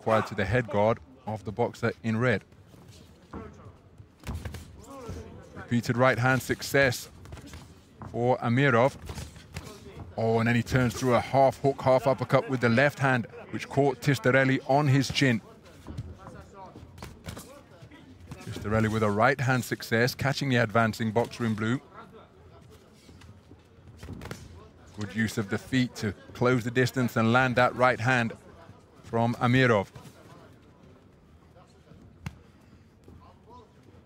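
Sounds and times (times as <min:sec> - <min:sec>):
faint voices in hall: 0:02.3 - 0:06.2, 0:10.8 - 0:19.2, 0:21.3 - 0:34.0
gloved punches and footwork: 0:03.3 - 0:08.1, 0:08.9 - 0:10.0.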